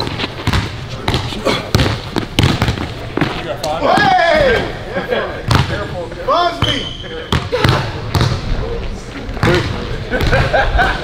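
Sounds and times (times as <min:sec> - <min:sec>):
basketball bouncing on hardwood: 0:00.0 - 0:03.4, 0:07.3 - 0:08.4.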